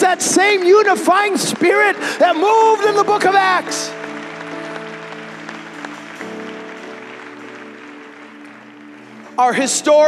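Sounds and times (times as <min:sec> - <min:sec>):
audience applause: 0:00.0 - 0:10.0.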